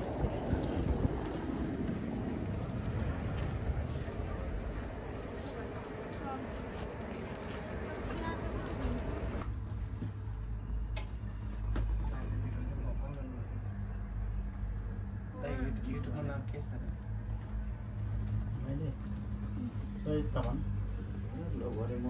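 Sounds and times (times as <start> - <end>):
gondola cabin hum: 0.0 - 22.0
people talking outdoors: 0.0 - 22.0.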